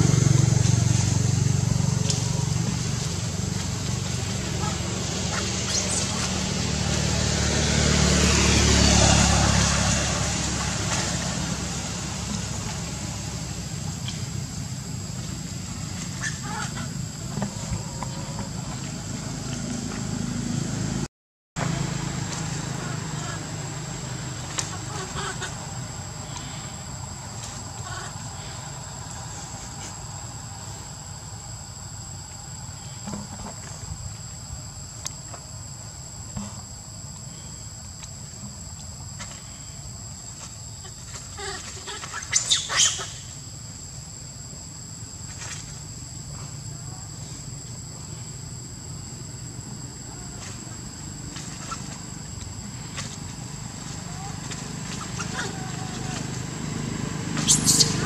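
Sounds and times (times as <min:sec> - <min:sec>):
high insect drone: 0:00.0 - 0:58.0
leaves and branches rustling: 0:00.1 - 0:20.4, 0:49.8 - 0:58.0.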